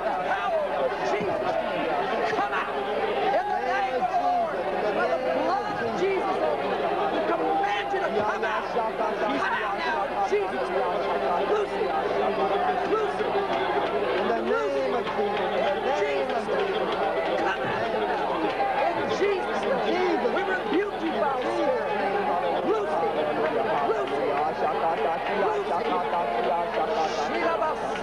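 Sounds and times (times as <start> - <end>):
group praying aloud in tongues: 0.0 - 28.0.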